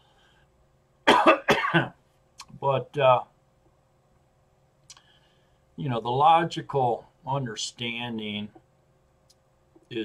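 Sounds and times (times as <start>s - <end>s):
man coughing: 1.0s - 2.0s.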